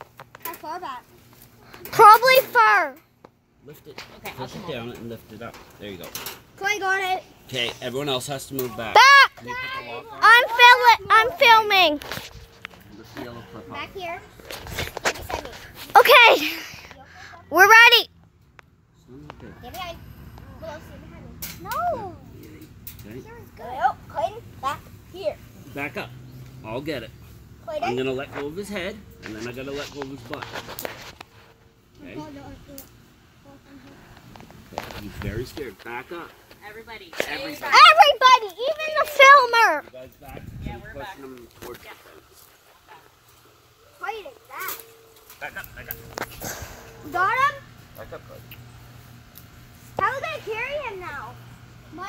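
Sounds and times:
person's wordless exclamation: 17.5s - 18.1s.

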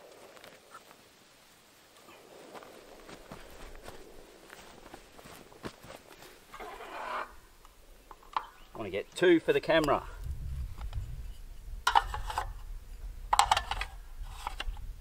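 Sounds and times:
rustle: 0.0s - 15.0s
footsteps through grass: 2.0s - 7.1s.

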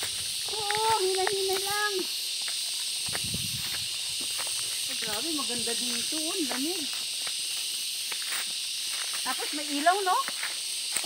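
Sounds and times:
footsteps on dry grass and stones: 0.0s - 11.0s
insect chorus shrilling: 0.0s - 11.0s.

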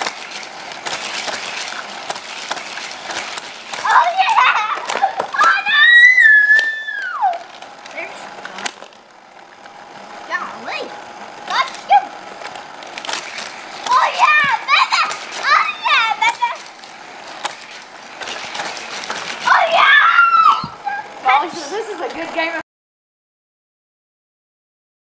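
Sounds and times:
young children squealing: 3.9s - 7.5s, 19.4s - 21.1s.

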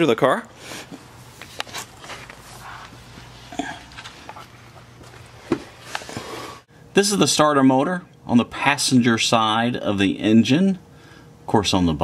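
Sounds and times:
scuffling and handling noise: 0.9s - 6.6s.

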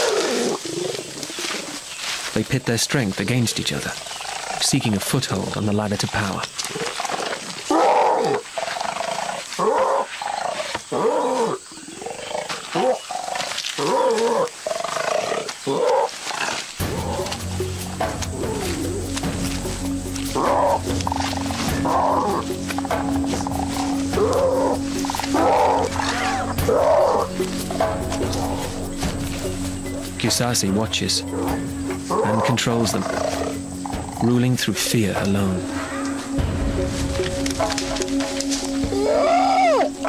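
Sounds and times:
orangutans calling loudly: 0.0s - 2.2s, 3.6s - 40.0s
low music bed: 0.2s - 6.6s, 16.7s - 40.0s.

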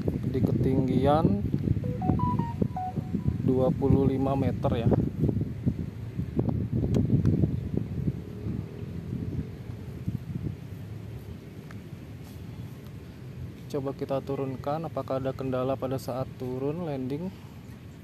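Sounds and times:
wind buffeting microphone: 0.0s - 1.9s, 2.6s - 13.6s.

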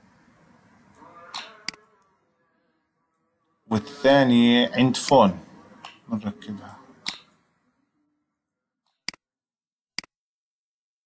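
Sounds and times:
faint room noise: 0.0s - 8.7s.

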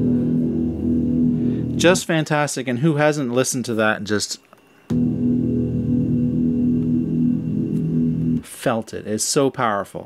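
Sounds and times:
piano chord ringing: 0.0s - 2.0s, 4.9s - 8.5s.

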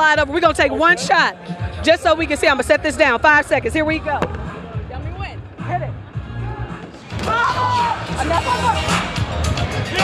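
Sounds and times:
background music with bass line: 0.0s - 10.0s
crowd voices: 0.0s - 10.0s.

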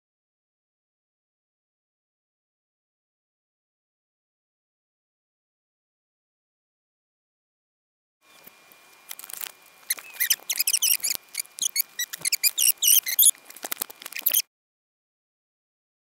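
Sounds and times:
foam packaging squeaking: 8.3s - 14.5s.

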